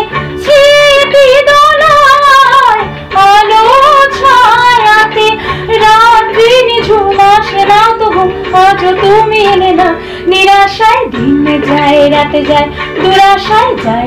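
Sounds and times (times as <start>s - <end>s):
instrumental accompaniment: 0.0s - 14.0s
woman singing: 0.0s - 14.0s
woman breathing: 5.4s - 5.7s, 10.0s - 10.3s.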